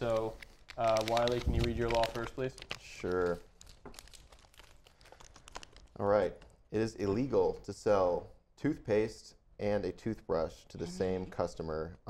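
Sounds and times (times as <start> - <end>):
paper slips rustling and crinkling: 0.0 - 6.0.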